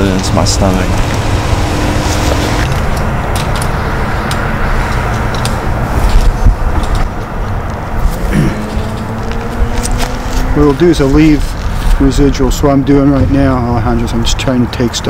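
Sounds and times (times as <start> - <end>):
loud low rumble: 0.0 - 6.9.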